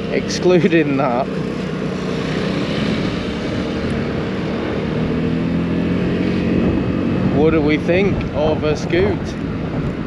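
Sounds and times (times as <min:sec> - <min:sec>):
scooter engine running: 0:00.0 - 0:10.0
wind and road noise: 0:00.0 - 0:10.0.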